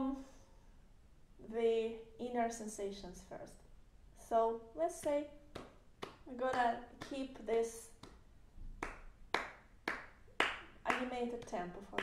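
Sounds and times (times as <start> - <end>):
hands clapping: 5.5 - 12.0.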